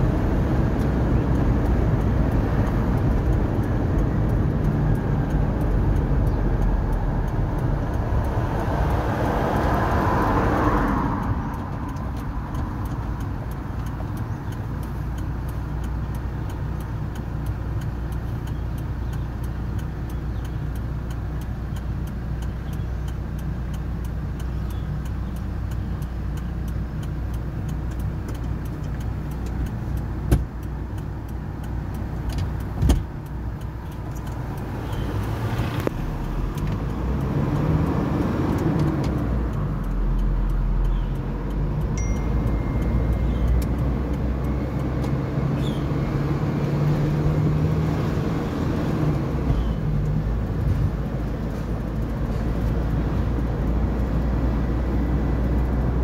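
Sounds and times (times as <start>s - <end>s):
car engine and road noise: 0.0s - 56.0s
short steady tone: 42.0s - 43.6s.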